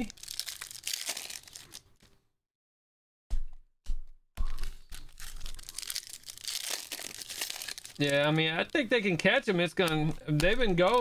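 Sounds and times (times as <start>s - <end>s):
foil wrappers crinkling and tearing: 0.0s - 2.1s, 4.5s - 11.0s.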